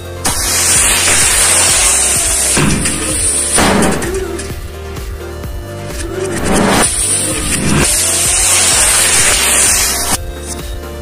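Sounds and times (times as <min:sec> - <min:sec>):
firework rocket hissing: 0:00.0 - 0:04.8, 0:05.8 - 0:10.2
music with a steady beat: 0:00.0 - 0:11.0.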